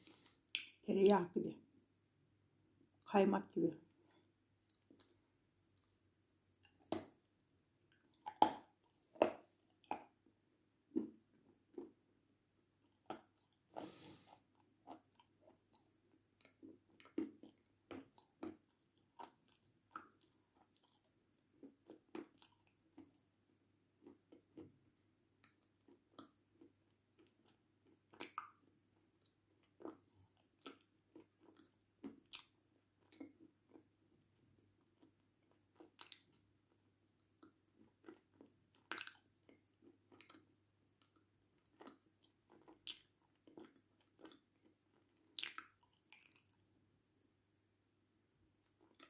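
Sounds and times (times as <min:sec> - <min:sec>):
person chewing dry clay: 0:04.0 - 0:05.9, 0:07.9 - 0:10.3, 0:10.9 - 0:12.1, 0:12.8 - 0:46.7, 0:48.6 - 0:49.0.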